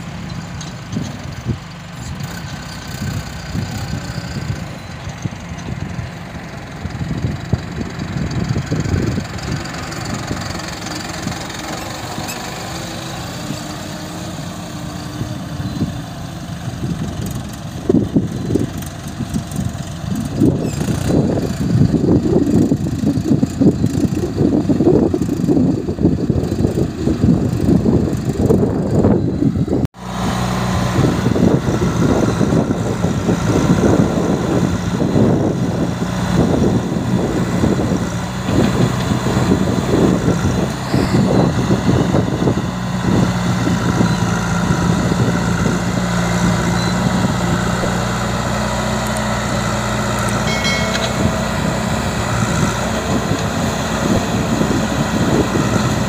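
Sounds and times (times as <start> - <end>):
backhoe loader engine working: 0.0 - 56.0
tractor diesel engine running: 0.0 - 56.0.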